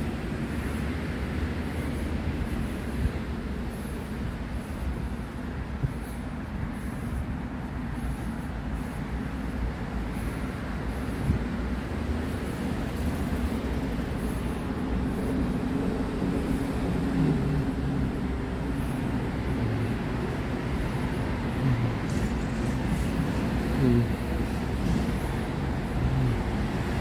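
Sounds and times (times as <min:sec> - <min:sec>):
road traffic rumble: 0:00.0 - 0:27.0
passing vehicle engine: 0:12.0 - 0:27.0.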